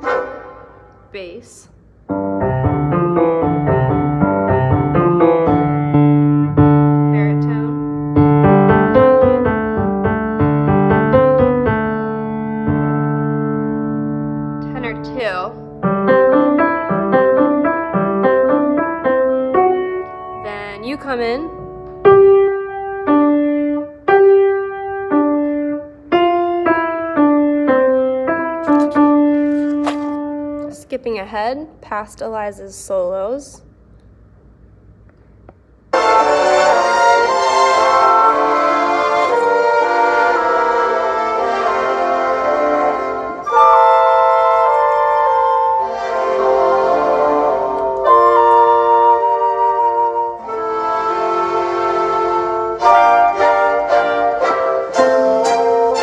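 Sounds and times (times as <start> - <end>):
orchestral music with brass: 0.0 - 1.1, 35.9 - 56.0
piano playing: 0.0 - 31.2, 35.9 - 56.0.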